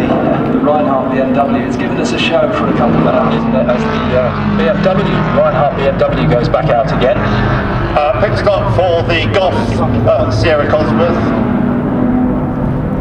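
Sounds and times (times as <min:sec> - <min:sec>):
indistinct voices: 0:00.0 - 0:11.5
car engines droning: 0:00.0 - 0:13.0.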